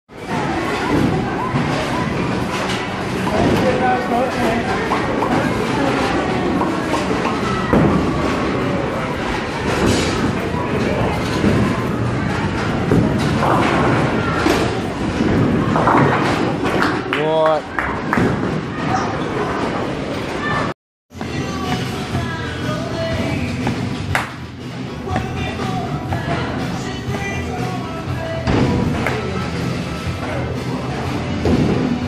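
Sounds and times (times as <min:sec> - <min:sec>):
voices shouting and chattering: 0:00.1 - 0:23.4.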